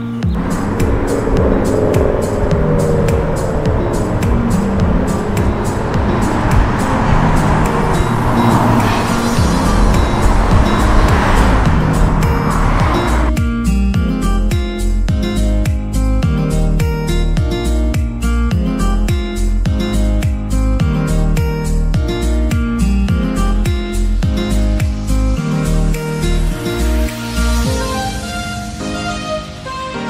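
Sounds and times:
car road noise: 0.0s - 13.4s
background music with beat: 0.0s - 30.0s.

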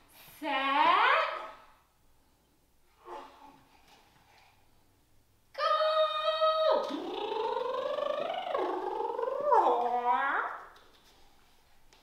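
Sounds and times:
wordless swooping vocalisation: 6.8s - 9.9s.

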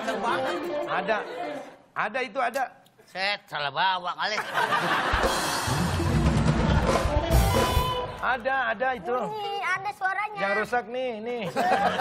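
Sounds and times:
live rock band playing: 5.0s - 8.2s.

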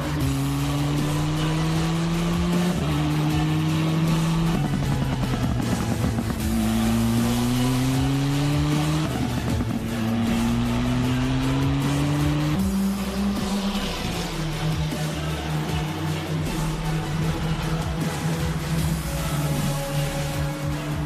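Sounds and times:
race car engine accelerating: 0.0s - 21.0s.

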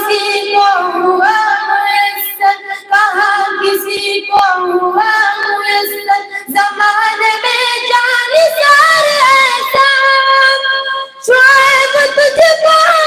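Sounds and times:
high voice singing devotional song: 0.0s - 13.0s
singer breathing: 6.2s - 6.5s.

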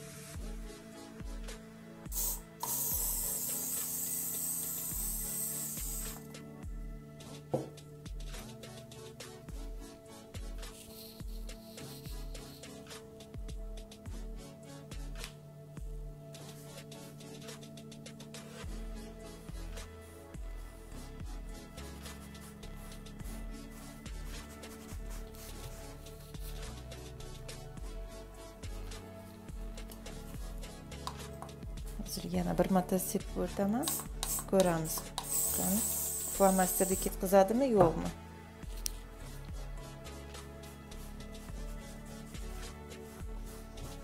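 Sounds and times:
aerosol spray can hissing: 2.1s - 6.3s, 10.7s - 12.9s, 33.8s - 37.2s.

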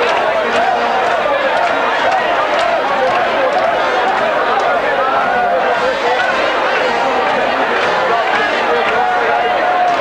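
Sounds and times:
crowd talking and calling: 0.0s - 10.0s.

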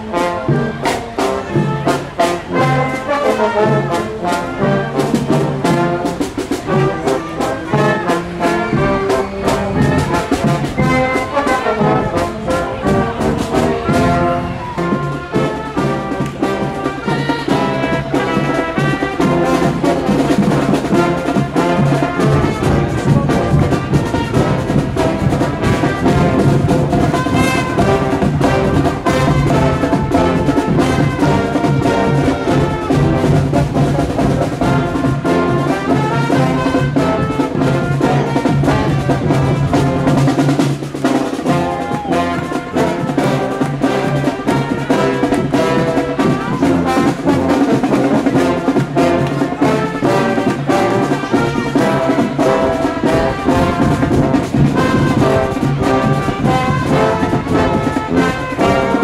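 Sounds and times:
marching drum beat: 0.0s - 59.0s
trumpets and trombones melody: 0.0s - 59.0s.

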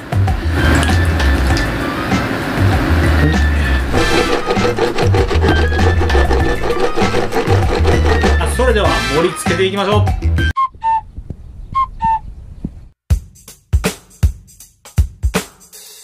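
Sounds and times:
wooden spatula scraping frying pan: 3.5s - 8.8s
background music with beat: 13.1s - 16.0s.

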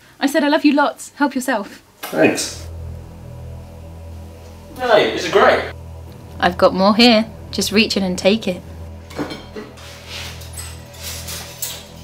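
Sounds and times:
low background music drone: 2.4s - 12.0s.

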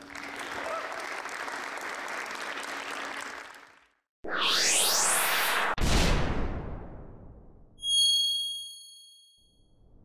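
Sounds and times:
rising whoosh: 4.2s - 6.8s
bright bell-like ding: 7.8s - 9.5s.

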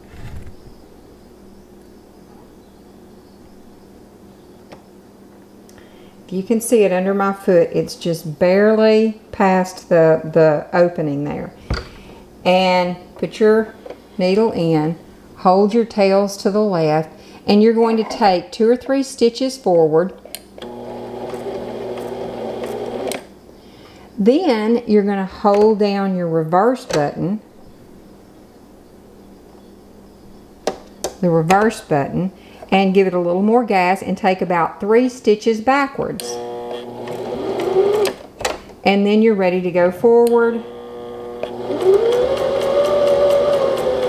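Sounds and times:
sewing machine running: 20.6s - 23.2s, 36.2s - 38.2s, 40.5s - 44.0s.

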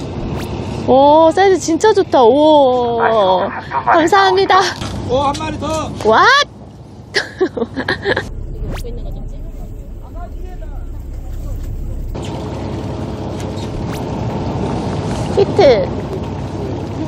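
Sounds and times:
wind and boat rumble: 0.0s - 3.0s, 7.9s - 17.0s
bursts of voices: 3.0s - 4.8s.

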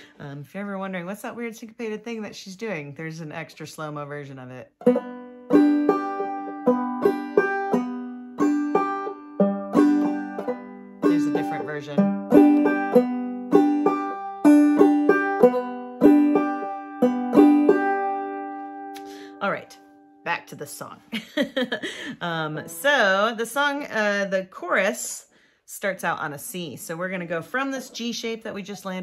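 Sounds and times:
banjo plucking and strumming: 3.1s - 19.7s, 22.2s - 24.3s.

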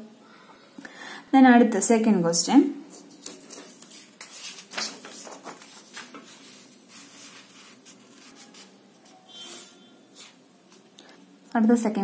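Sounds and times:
hands rubbing on paper: 3.2s - 9.2s.

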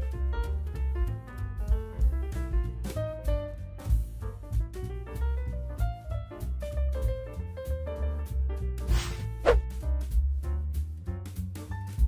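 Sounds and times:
jazzy instrumental music: 0.0s - 12.0s
swoosh with sliding pitch: 8.9s - 9.6s.

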